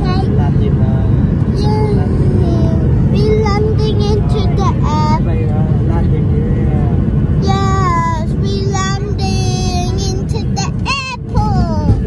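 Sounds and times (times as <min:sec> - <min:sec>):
airliner cabin roar: 0:00.0 - 0:12.0
child's high gliding voice: 0:07.4 - 0:12.0.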